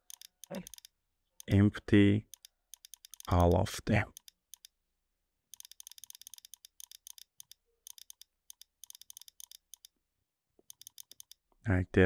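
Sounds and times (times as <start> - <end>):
rapid computer mouse clicks: 0.0 - 1.6, 2.3 - 4.8, 5.5 - 9.9, 10.6 - 11.4.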